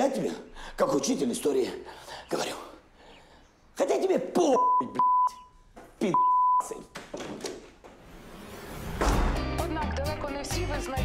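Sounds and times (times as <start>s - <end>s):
censor bleeps: 4.6s - 6.8s.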